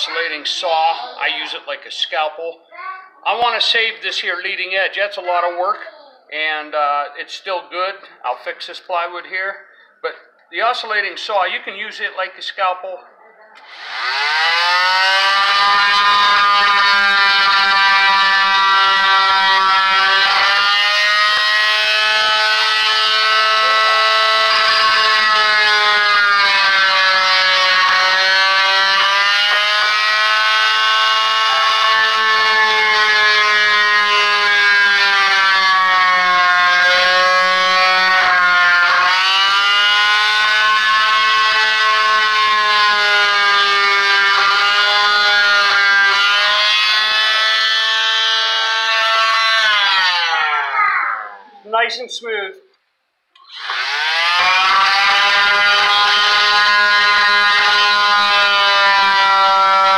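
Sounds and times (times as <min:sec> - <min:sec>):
oscillating multi-tool cutting wood: 0:13.6 - 0:50.7, 0:53.4 - 0:59.9.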